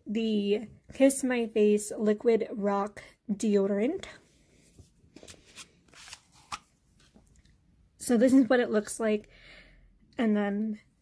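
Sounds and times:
handling rustles: 0:04.6 - 0:07.3.

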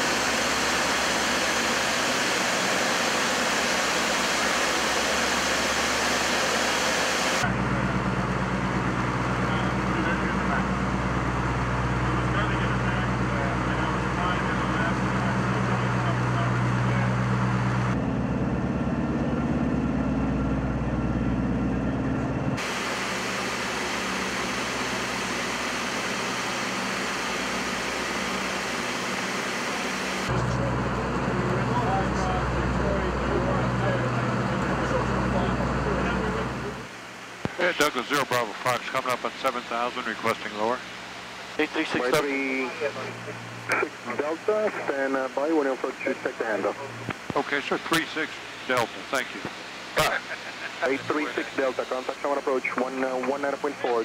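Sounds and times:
low propeller hum: 0:00.0 - 0:54.0
propeller aircraft engines droning: 0:00.0 - 0:54.0.

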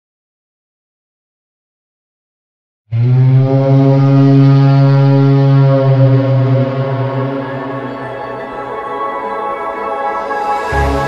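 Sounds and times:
low held music note: 0:03.0 - 0:09.5.

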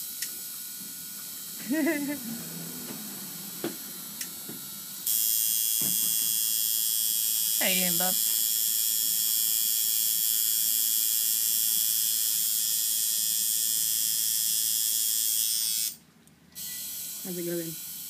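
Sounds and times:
tattoo machine buzzing: 0:00.0 - 0:16.0, 0:16.6 - 0:18.0.

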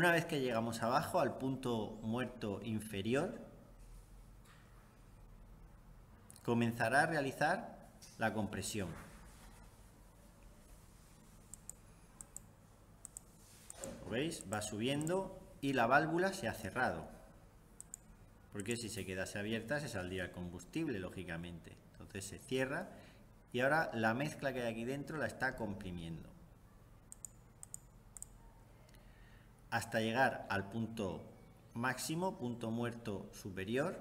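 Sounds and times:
computer mouse clicks: 0:11.3 - 0:15.2, 0:17.8 - 0:18.8, 0:27.1 - 0:29.0.

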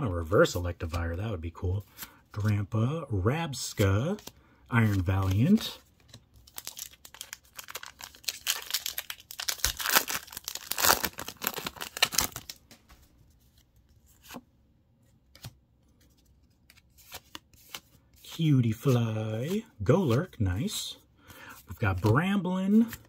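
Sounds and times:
foil wrapper tearing and crinkling: 0:06.5 - 0:12.6.

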